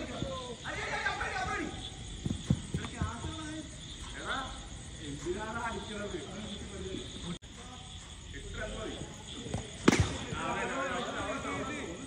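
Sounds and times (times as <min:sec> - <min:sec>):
people shouting and calling: 0:00.0 - 0:02.0.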